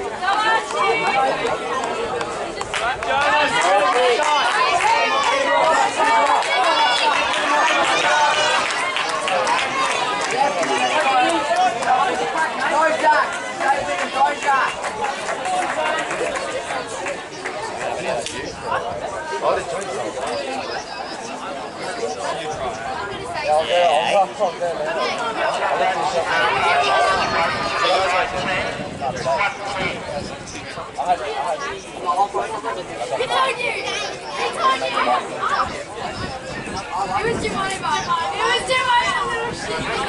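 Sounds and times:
spectators chattering: 0:00.0 - 0:40.0.

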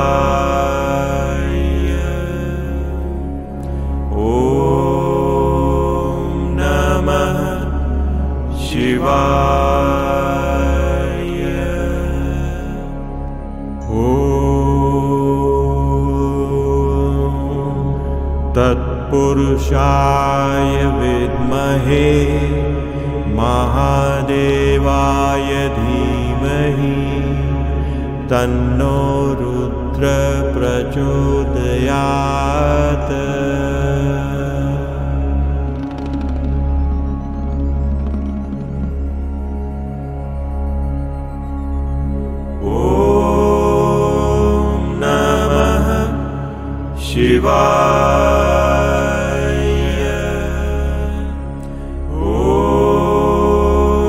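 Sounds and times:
man chanting: 0:00.0 - 0:03.2, 0:04.1 - 0:13.0, 0:13.8 - 0:36.1, 0:42.6 - 0:54.0
devotional music: 0:00.0 - 0:54.0
low pulsing drone: 0:00.0 - 0:54.0.

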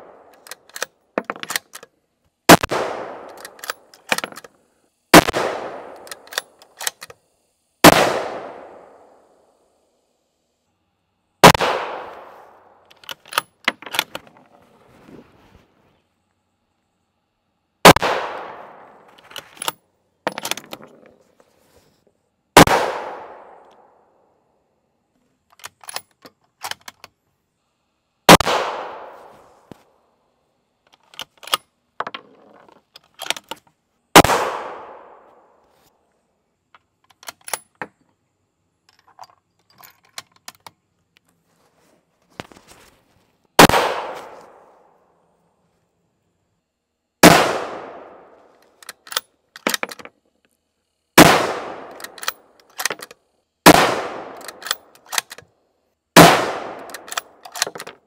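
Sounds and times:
small clicks and knocks: 0:00.3 - 0:02.0, 0:25.4 - 0:27.2, 0:30.8 - 0:33.8, 0:36.7 - 0:38.2, 0:38.8 - 0:41.4, 0:48.5 - 0:50.6, 0:51.9 - 0:53.3, 0:54.4 - 0:55.5, 0:56.8 - 0:58.0
rifle shots ringing out: 0:02.5 - 0:03.9, 0:05.1 - 0:06.6, 0:07.8 - 0:09.2, 0:11.4 - 0:12.7, 0:17.8 - 0:19.1, 0:22.6 - 0:23.9, 0:28.3 - 0:29.3, 0:34.2 - 0:35.3, 0:43.6 - 0:44.8, 0:47.2 - 0:48.4, 0:51.2 - 0:52.4, 0:53.6 - 0:54.8, 0:56.2 - 0:57.4.

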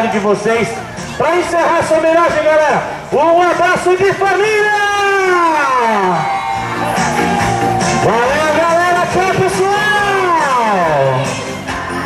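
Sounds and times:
loud music: 0:00.0 - 0:12.0.

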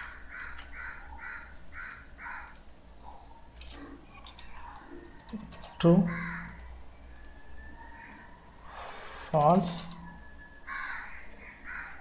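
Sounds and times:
bird's harsh calls: 0:06.1 - 0:06.6.

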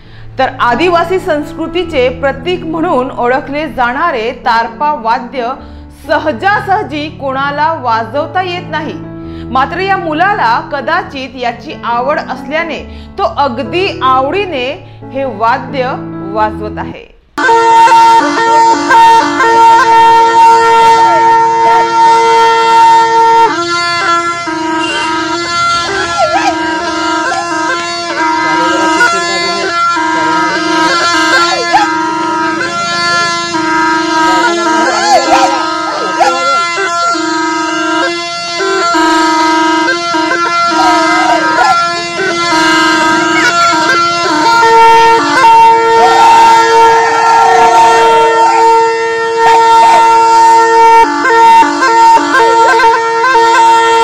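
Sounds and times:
gourd wind instrument drone: 0:17.4 - 0:54.0.

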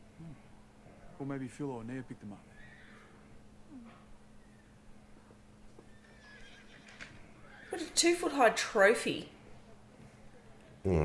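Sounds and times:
steady low hum: 0:00.0 - 0:06.2, 0:07.2 - 0:11.0
faint horse whinny: 0:02.5 - 0:03.2, 0:05.9 - 0:07.8.

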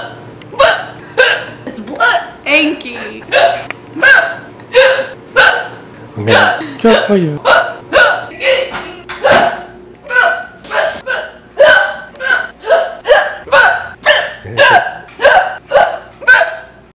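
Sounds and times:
woman hiccuping: 0:00.0 - 0:02.3, 0:03.2 - 0:16.7.

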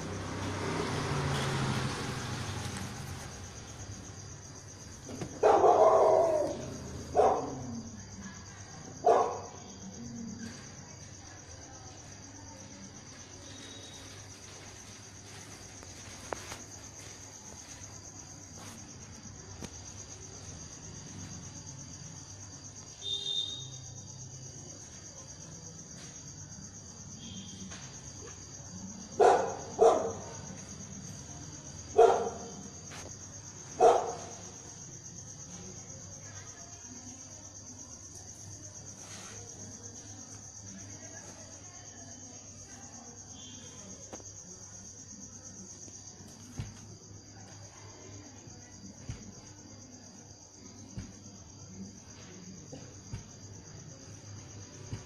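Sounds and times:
dog barking: 0:05.4 - 0:07.8, 0:09.0 - 0:09.6, 0:29.2 - 0:30.4, 0:31.9 - 0:32.6, 0:33.8 - 0:34.4.

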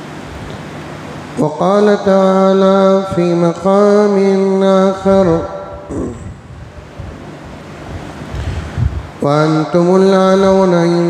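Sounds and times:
person reciting word: 0:01.4 - 0:06.5, 0:09.2 - 0:11.0
steady rushing noise: 0:04.7 - 0:11.0.

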